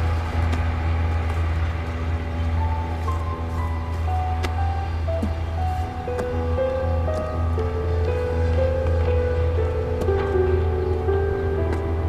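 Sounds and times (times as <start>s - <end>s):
held melody notes: 0.0s - 12.0s
steady low drone: 0.0s - 12.0s.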